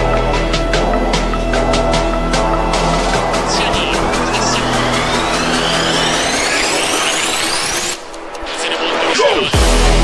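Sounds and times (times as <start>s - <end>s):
rising synth sweep: 0.0s - 8.1s
electronic music: 0.0s - 10.0s.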